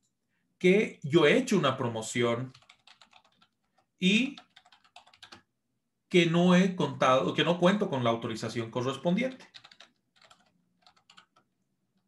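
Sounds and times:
keyboard typing: 0:02.4 - 0:05.5, 0:09.0 - 0:12.0.

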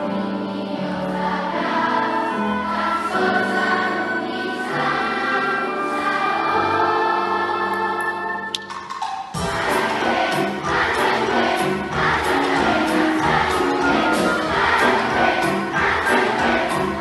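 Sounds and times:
choir singing: 0:00.0 - 0:08.5, 0:09.4 - 0:17.0
piano: 0:00.0 - 0:17.0
instrumental ensemble: 0:01.7 - 0:17.0.

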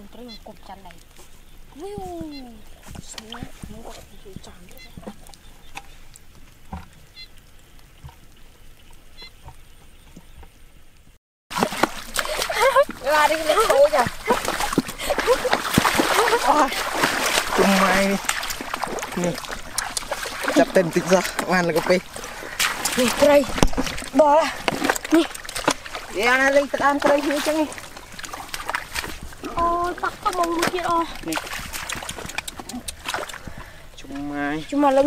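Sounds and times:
splashing in muddy water: 0:00.0 - 0:09.7, 0:11.5 - 0:35.0
faint water sounds: 0:00.0 - 0:35.0
men talking: 0:17.5 - 0:18.4, 0:19.1 - 0:19.6, 0:20.4 - 0:23.6.

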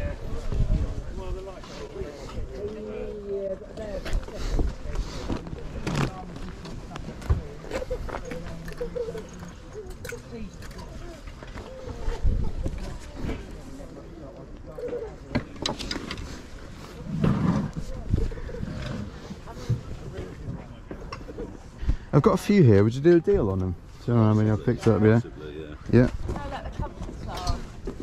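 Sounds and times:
faint voices: 0:00.0 - 0:22.3.

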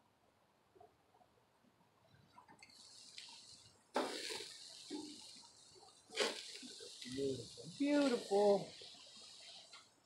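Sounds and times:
meat sizzling on grill: 0:02.6 - 0:10.0.

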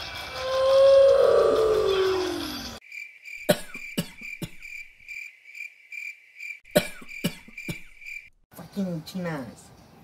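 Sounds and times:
person coughing: 0:03.5 - 0:04.6, 0:06.7 - 0:07.9.

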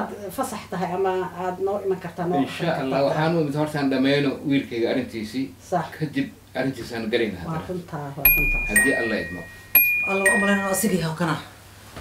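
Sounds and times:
doorbell ding-dong: 0:08.3 - 0:11.1.

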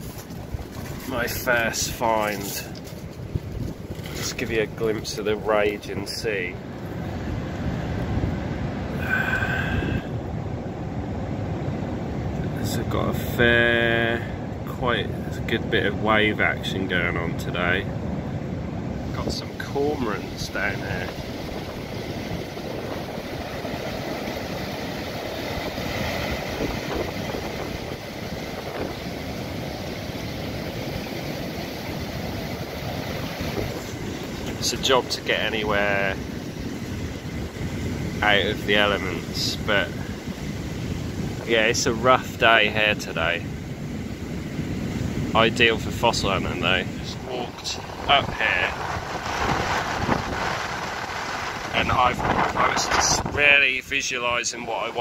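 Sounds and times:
wind buffeting microphone: 0:00.0 - 0:13.1, 0:14.4 - 0:54.6
breaking surf: 0:00.0 - 0:55.0.

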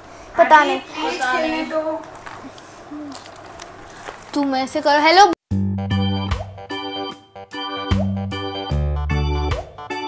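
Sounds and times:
soft hum-like voice: 0:02.5 - 0:03.3.

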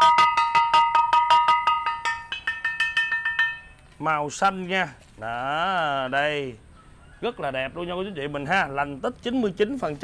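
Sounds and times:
porcelain jar tapped by hand: 0:00.0 - 0:03.8.

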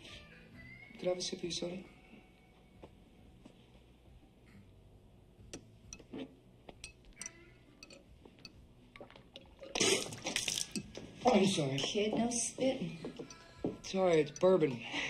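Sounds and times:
person spitting out liquid: 0:09.0 - 0:10.7.

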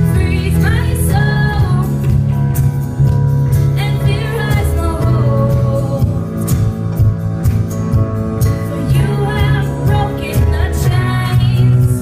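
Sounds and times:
live band playing slow song: 0:00.0 - 0:12.0
girl singing: 0:03.8 - 0:06.2, 0:08.8 - 0:12.0.

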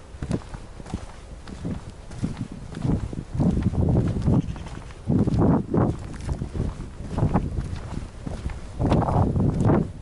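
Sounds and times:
footsteps in dry grass: 0:00.0 - 0:10.0.

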